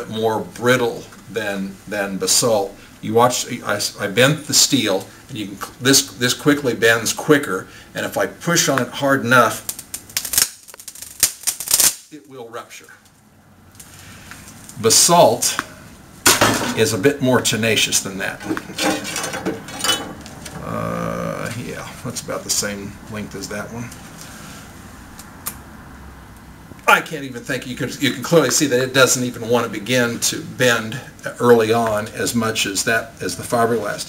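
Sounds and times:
rebar crackling and snapping: 0:09.5 - 0:12.2, 0:18.4 - 0:20.7
low steady hum: 0:12.2 - 0:34.0.

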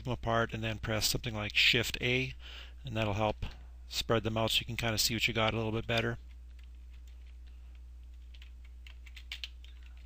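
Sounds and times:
steady low hum: 0:00.0 - 0:10.0
keyboard and mouse clicks: 0:05.4 - 0:10.0.

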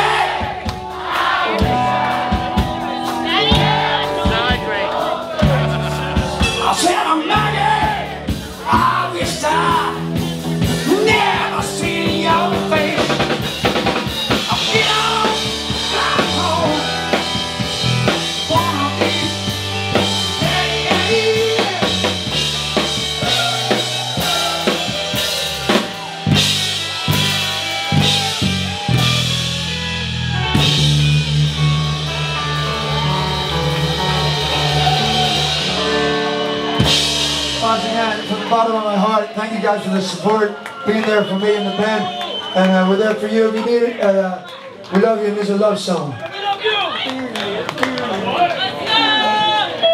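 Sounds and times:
loud rock band playing: 0:00.0 - 0:45.9, 0:48.7 - 0:49.9
heavy drum hits: 0:33.6 - 0:38.5.

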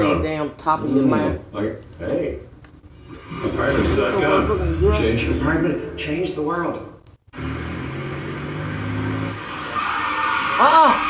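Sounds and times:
truck engine drone on television: 0:07.2 - 0:11.0.

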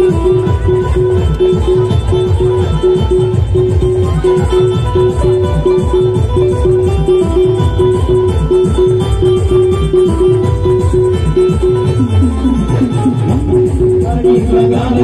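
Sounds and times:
electronic keyboard riff: 0:00.0 - 0:15.0
fast stick-played drums: 0:00.0 - 0:15.0.

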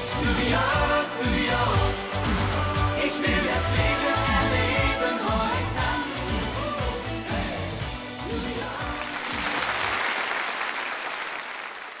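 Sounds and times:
pop song: 0:00.0 - 0:10.0
audience applause: 0:08.9 - 0:12.0.

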